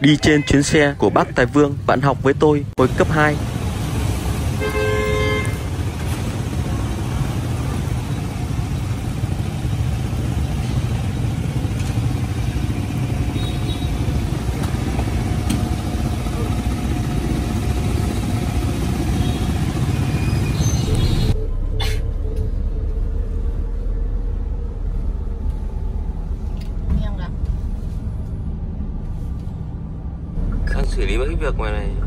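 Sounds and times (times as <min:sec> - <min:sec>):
low rumble of engines: 0:00.0 - 0:32.0
vehicle horn: 0:04.5 - 0:05.8, 0:13.3 - 0:14.2, 0:19.1 - 0:22.0.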